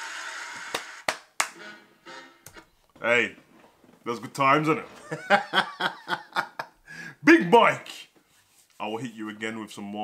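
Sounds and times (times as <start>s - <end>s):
hand claps: 0.7s - 1.6s.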